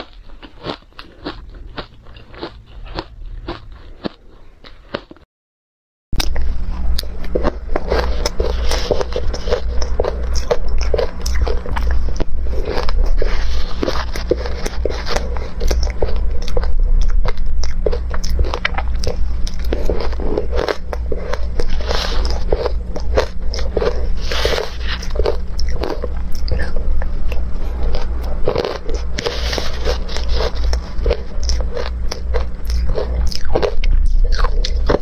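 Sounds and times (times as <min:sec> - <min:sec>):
ice crunching being chewed: 0:00.0 - 0:05.2, 0:06.2 - 0:35.0
steady low hum: 0:00.0 - 0:05.2, 0:06.2 - 0:35.0.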